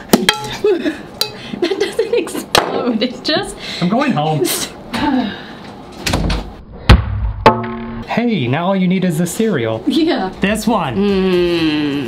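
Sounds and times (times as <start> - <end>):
door slamming shut: 6.0 - 8.0.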